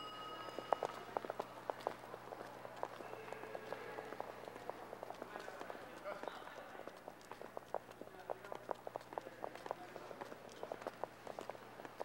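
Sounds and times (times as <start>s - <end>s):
faint murmur of voices: 0.0s - 12.0s
footsteps on stone floor: 0.6s - 12.0s.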